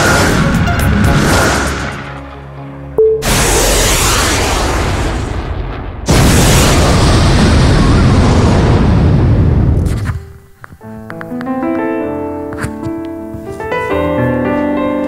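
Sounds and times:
rocket launch blast: 0:03.2 - 0:09.9.

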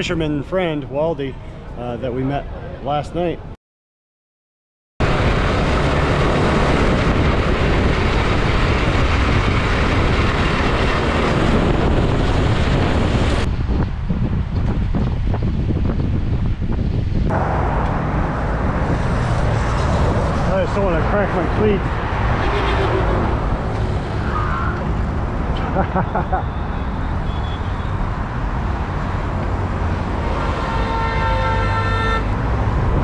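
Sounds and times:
wind rushing on microphone: 0:05.0 - 0:25.6, 0:32.2 - 0:33.0
truck engine and tyre noise: 0:05.0 - 0:33.0.

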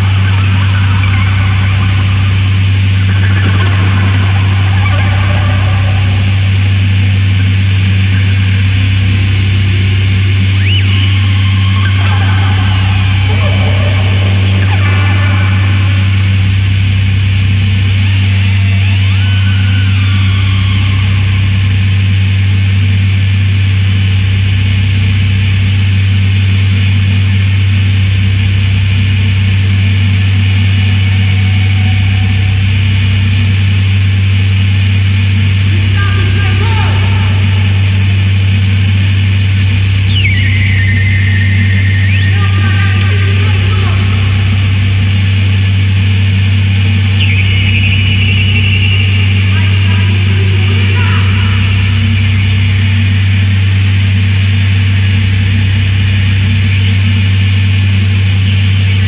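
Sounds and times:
high squealing electronic tones: 0:00.0 - 0:21.6, 0:35.4 - 0:53.0
throbbing low electronic drone: 0:00.0 - 0:59.0.

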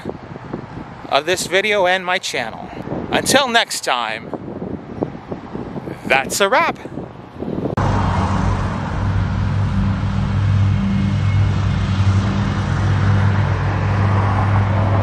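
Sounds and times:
loud motor drone: 0:07.8 - 0:15.0.

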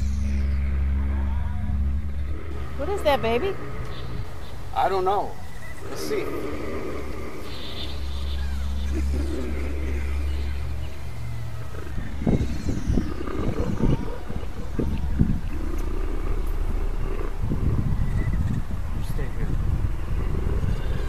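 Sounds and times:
low rough growling: 0:00.0 - 0:21.0
steady low hum: 0:00.0 - 0:21.0.

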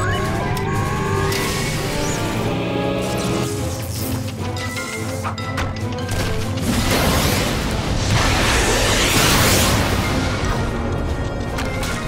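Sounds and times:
rising power-up whines: 0:00.0 - 0:03.4
background music: 0:00.0 - 0:12.0.

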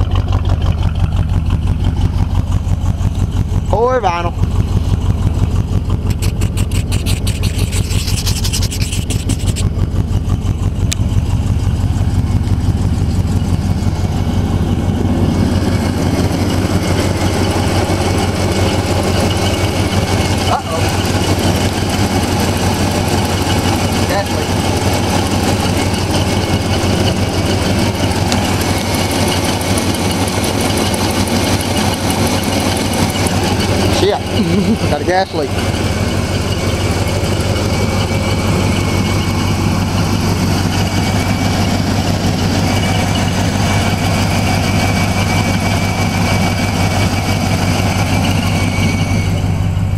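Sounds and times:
car engine idling: 0:00.0 - 0:49.9.

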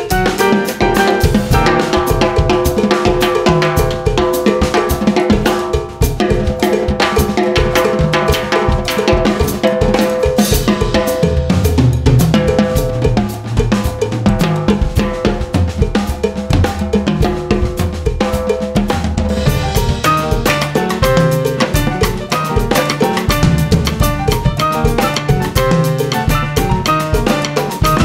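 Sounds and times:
drum kits playing groove: 0:00.0 - 0:28.0.

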